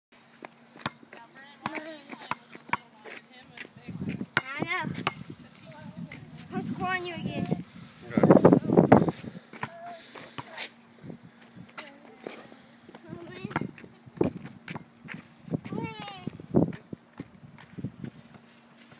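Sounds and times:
child calling: 15.7s - 16.4s.

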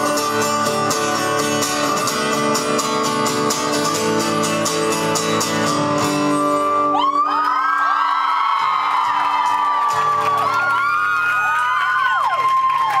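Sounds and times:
acoustic guitar strumming: 0.0s - 7.3s
audience cheering: 6.9s - 13.0s.

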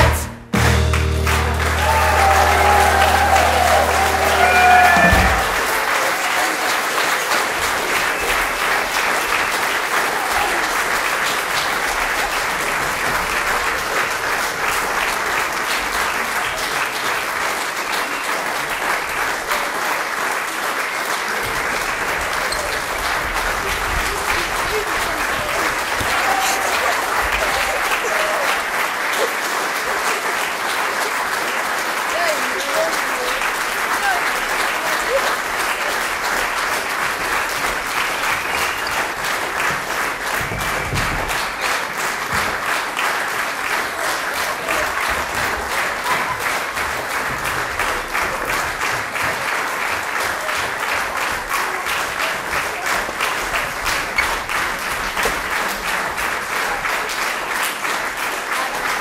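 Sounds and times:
audience clapping: 0.0s - 59.0s.

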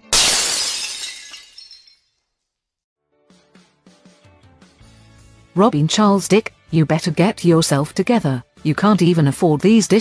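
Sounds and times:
dishes crashing and shattering: 0.0s - 2.1s.

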